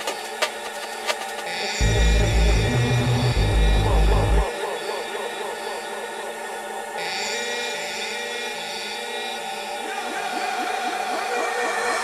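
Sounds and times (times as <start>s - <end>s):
gritty atmospheric synth texture: 1.4s - 12.0s.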